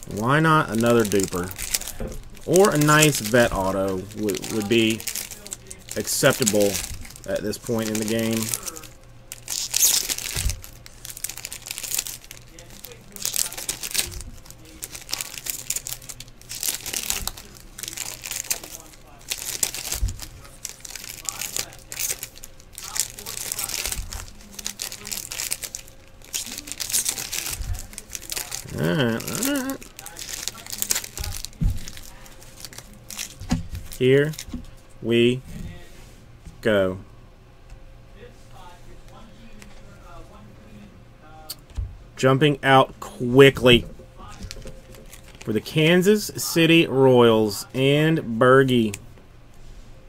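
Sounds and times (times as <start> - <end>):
wrappers tearing and crinkling: 0.0 - 34.7, 43.6 - 47.6
wavering vocal sound: 28.6 - 29.9.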